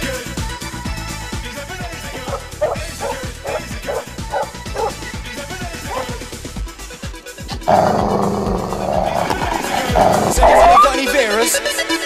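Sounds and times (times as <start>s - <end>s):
small dog barking: 2.2s - 5.0s, 5.9s - 6.2s.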